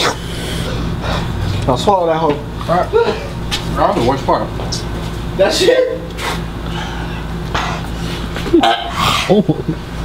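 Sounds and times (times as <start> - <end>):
man breathing out hard: 6.6 - 8.2.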